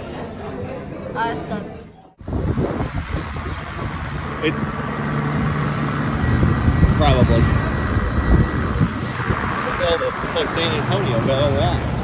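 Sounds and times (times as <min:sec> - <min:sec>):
low engine hum: 0:02.2 - 0:12.0
passing vehicles rumble: 0:02.2 - 0:12.0.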